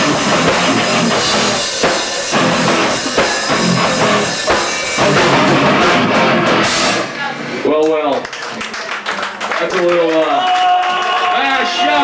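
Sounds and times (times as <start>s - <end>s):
punk band playing live: 0.0s - 7.6s.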